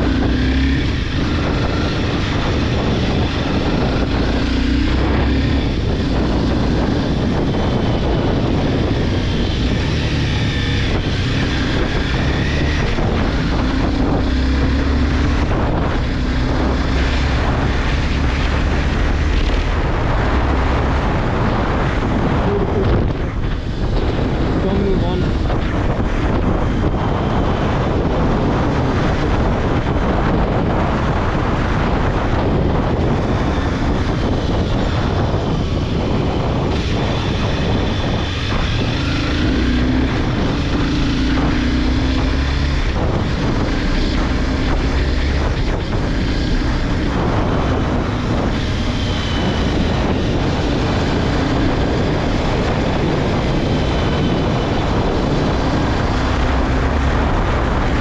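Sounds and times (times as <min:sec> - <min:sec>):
motorcycle engine running: 0:00.0 - 0:58.0
wind rush on microphone: 0:00.0 - 0:58.0.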